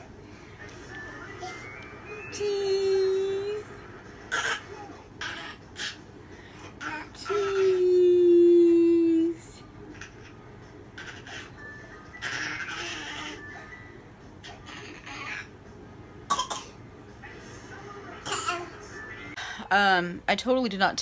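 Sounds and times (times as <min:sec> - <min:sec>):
baby squealing and laughing: 0:12.2 - 0:13.4.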